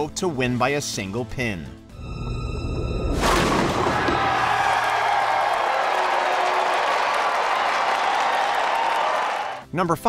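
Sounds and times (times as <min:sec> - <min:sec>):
music: 0:00.0 - 0:10.0
crowd cheering and applauding: 0:03.6 - 0:09.6.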